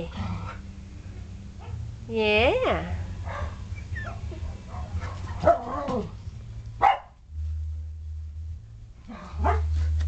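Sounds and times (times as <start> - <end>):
steady low hum: 0.0 - 10.0
dogs barking: 3.2 - 6.2, 6.8 - 7.2, 9.1 - 9.8
dog whining: 3.7 - 4.3.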